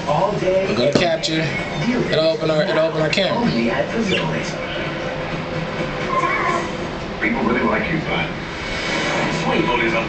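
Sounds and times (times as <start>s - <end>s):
television rumbling noise: 0.0s - 10.0s.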